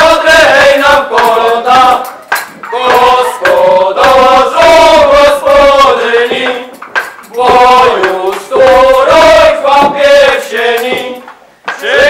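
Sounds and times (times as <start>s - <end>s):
group singing carols: 0.0s - 12.0s.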